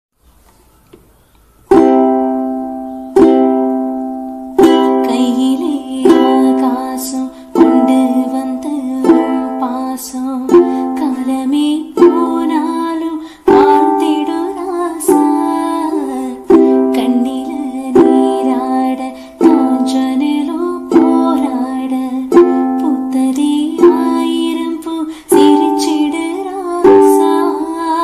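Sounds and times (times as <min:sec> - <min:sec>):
ukulele strumming: 0:01.7 - 0:28.0
woman singing: 0:04.6 - 0:28.0.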